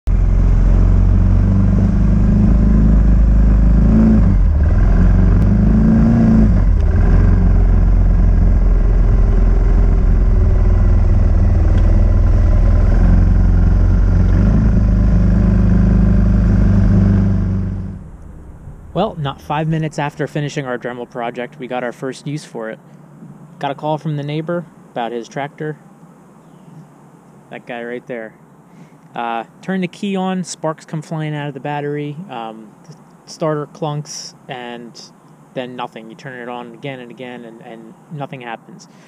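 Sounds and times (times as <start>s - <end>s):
off-road vehicle engine revving: 0.1s - 20.4s.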